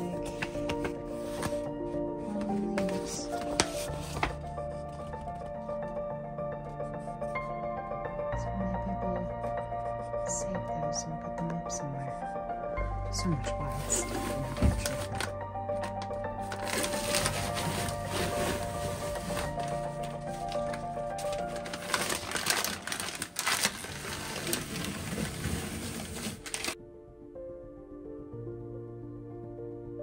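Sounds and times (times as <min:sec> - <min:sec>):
shelf liner paper rustling and crinkling: 0:00.0 - 0:05.5, 0:13.5 - 0:26.8
background music soft sustained tones: 0:00.0 - 0:30.0.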